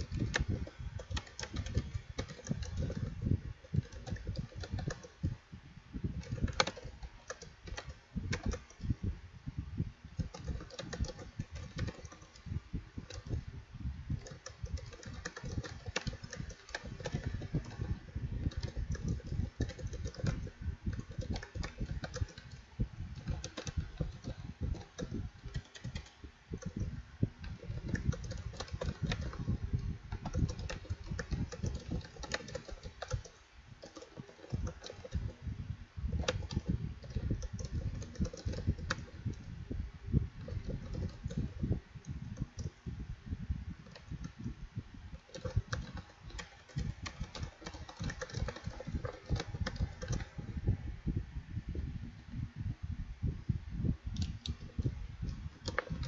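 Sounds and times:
rapid keyboard typing: 0.0 - 5.4, 6.0 - 9.0, 10.1 - 13.5, 14.1 - 39.6, 40.2 - 42.8, 43.7 - 50.7, 54.2 - 56.0.

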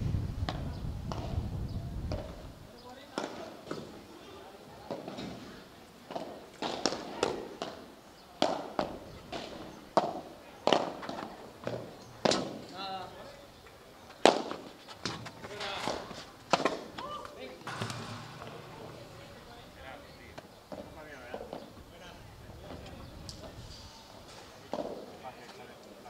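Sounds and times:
padel racket hitting ball: 17.7 - 19.5
ball bouncing: 17.7 - 19.8.

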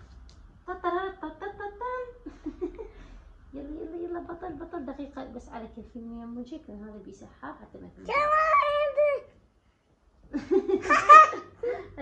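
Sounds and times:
child laughing: 10.6 - 11.6.

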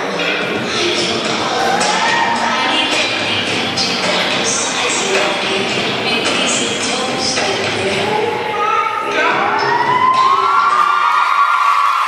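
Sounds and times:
high-pitched whoops: 1.5 - 2.5, 9.3 - 12.0
young voices cheering: 1.5 - 2.7, 8.6 - 12.0.

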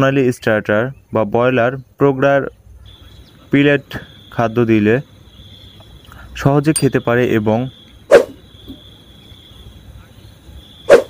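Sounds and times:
high-pitched insect chirring: 2.9 - 11.0.

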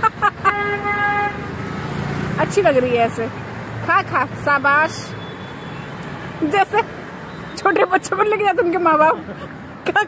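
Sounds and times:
street traffic hum: 0.0 - 10.0
vehicle horn honk: 0.4 - 1.5.

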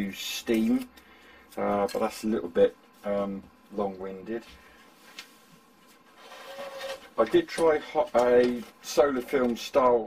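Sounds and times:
tool rubbing and rustling: 5.9 - 9.4.

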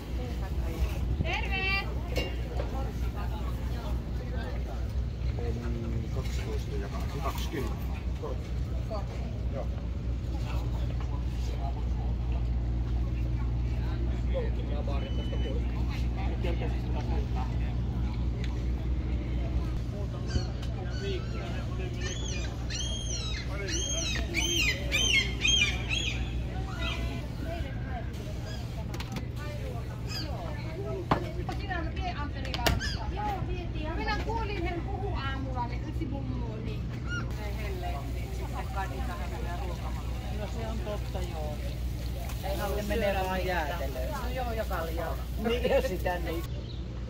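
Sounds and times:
faint indistinct voices: 0.0 - 47.0
people chattering: 0.0 - 47.0.

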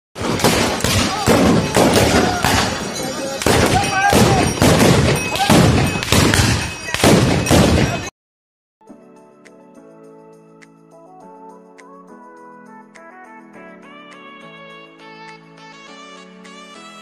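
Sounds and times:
gunshots: 0.2 - 8.1
men shouting and whooping: 1.0 - 4.6.

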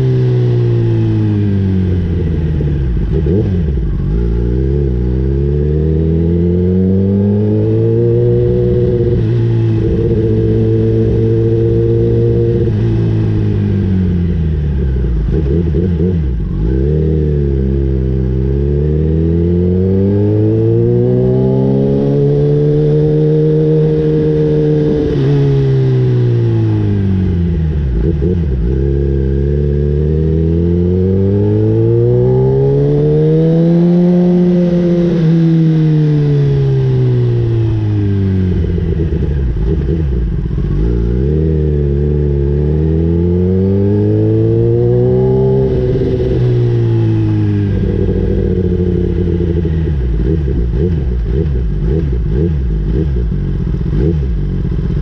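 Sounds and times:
motorcycle engine: 0.0 - 55.0.

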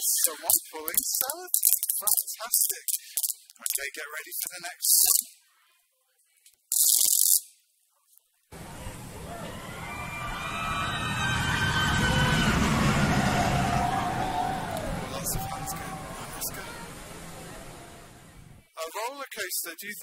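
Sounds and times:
roller coaster rumble: 8.6 - 18.6.

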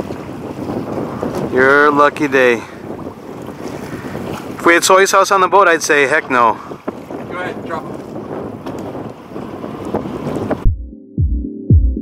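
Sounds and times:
sea water on a boat: 0.0 - 10.7
wind on microphone: 0.0 - 10.8
electronic music with kick drum: 10.6 - 12.0.

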